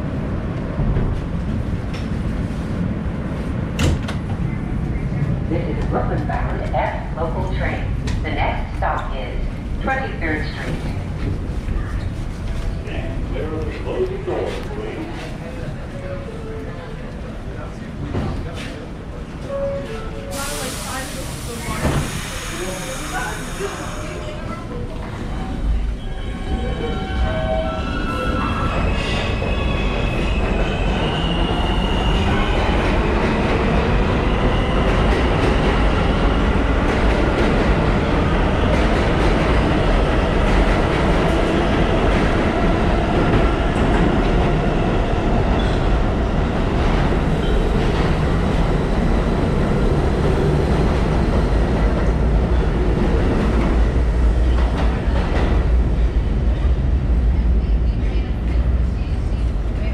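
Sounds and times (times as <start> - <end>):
subway train rumble: 0.0 - 59.9.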